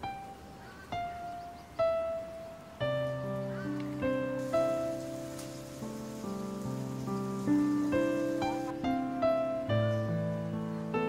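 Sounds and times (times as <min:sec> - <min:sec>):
faint steady hiss: 0:00.0 - 0:11.0
slow soft piano music: 0:00.0 - 0:11.0.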